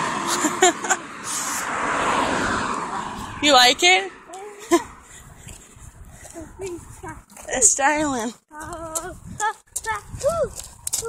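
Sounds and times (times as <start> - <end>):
person's voice: 6.4 - 10.6.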